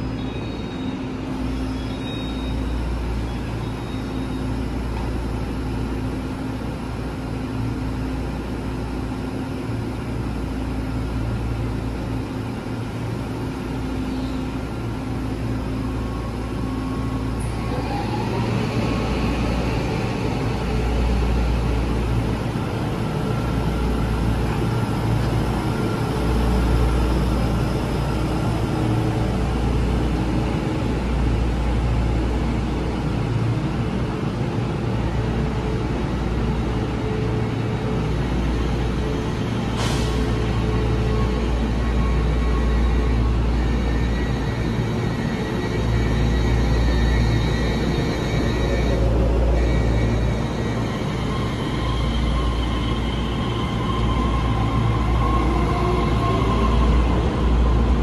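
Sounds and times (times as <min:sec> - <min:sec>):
electric train pulling away: 0:00.0 - 0:58.0
train equipment hum: 0:00.0 - 0:58.0.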